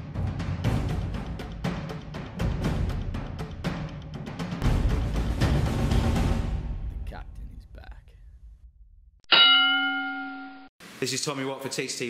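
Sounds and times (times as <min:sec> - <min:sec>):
loud bell ding: 0:09.3 - 0:10.7.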